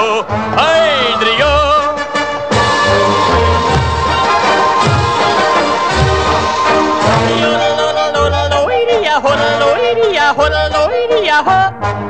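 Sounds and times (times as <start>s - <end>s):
pulsing bass: 2.5s - 8.7s
person yodeling: 6.5s - 11.8s.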